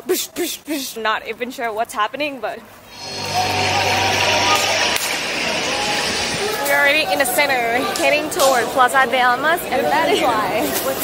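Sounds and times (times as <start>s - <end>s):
traffic hiss: 2.8s - 8.8s
heavy vehicle engine hum: 2.9s - 8.0s.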